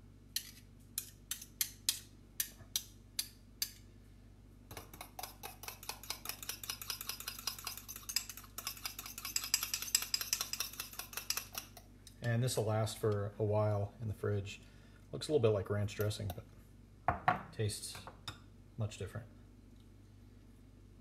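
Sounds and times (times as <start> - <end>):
fork whisking and scraping: 0.4 - 2.5, 4.7 - 11.9
fork clinking against ceramic bowl: 4.7 - 11.9.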